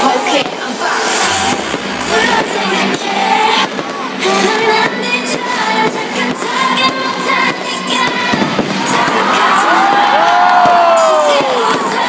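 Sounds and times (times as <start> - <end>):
music with singing: 0.0 - 12.0
fireworks popping and banging: 0.1 - 12.0.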